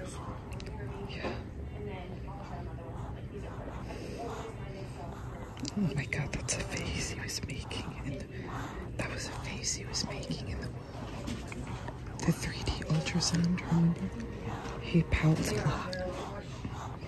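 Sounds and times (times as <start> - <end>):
soft breathy whispering: 0.0 - 17.0.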